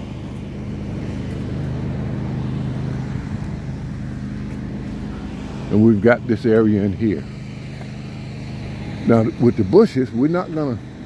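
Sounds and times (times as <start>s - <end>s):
riding lawn mower engine: 0.0s - 11.0s.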